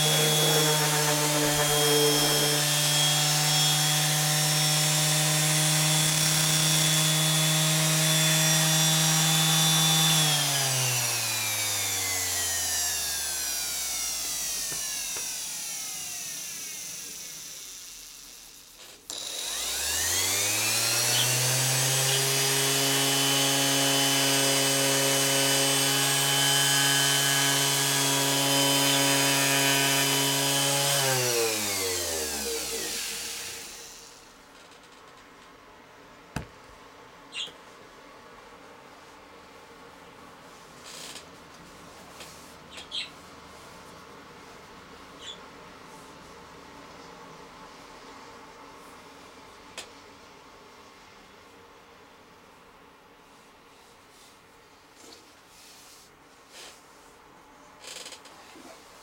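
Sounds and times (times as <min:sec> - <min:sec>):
electric sander whining: 0:00.0 - 0:34.2.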